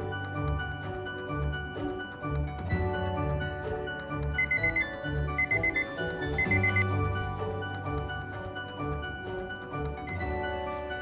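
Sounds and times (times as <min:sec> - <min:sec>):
background music: 0:00.0 - 0:11.0
timer alarm beeps: 0:04.4 - 0:07.2.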